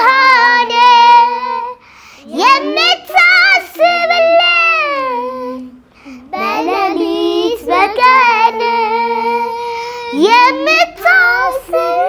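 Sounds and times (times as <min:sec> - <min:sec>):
girl singing a hymn: 0:00.0 - 0:12.0.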